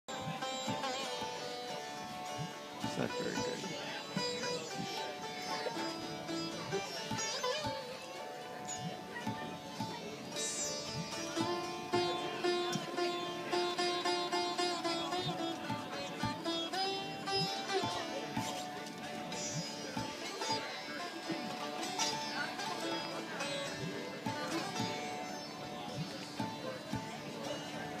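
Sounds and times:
sitar melody: 0:00.1 - 0:28.0.

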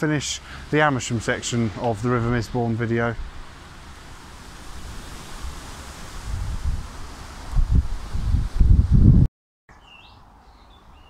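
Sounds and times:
leaves rustling: 0:00.0 - 0:09.2
wind buffeting microphone: 0:00.4 - 0:09.3
faint bird chirps: 0:09.7 - 0:11.0.

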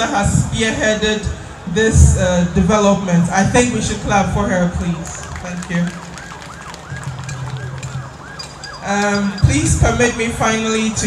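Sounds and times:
faint crowd noise: 0:00.0 - 0:11.0
high warbling ululation: 0:04.6 - 0:10.4.

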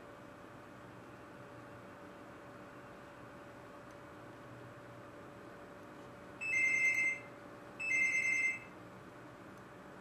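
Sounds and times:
electronic phone ringing: 0:06.4 - 0:08.8.

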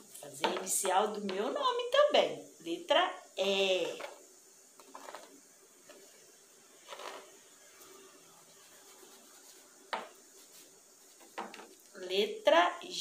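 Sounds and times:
soft rustle: 0:06.8 - 0:12.0
fingertip scraping through cornmeal: 0:06.9 - 0:07.4.

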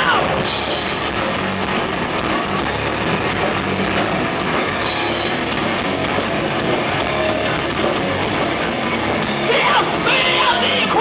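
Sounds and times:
rock band playing loud: 0:00.0 - 0:11.0
person singing: 0:09.4 - 0:11.0.

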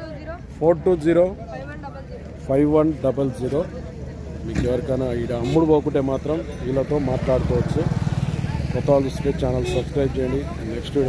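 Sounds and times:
men talking: 0:04.4 - 0:11.0.

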